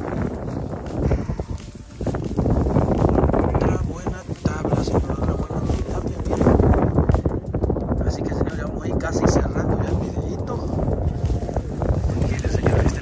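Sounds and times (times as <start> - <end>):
net dragged across dry grass: 0.0 - 7.2, 9.9 - 13.0
wind buffeting microphone: 0.0 - 13.0.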